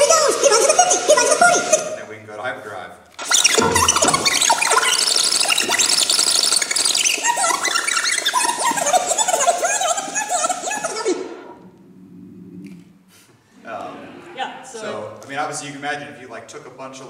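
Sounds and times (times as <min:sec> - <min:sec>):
fast high-pitched garbled samples: 0:00.0 - 0:02.1, 0:03.2 - 0:11.6.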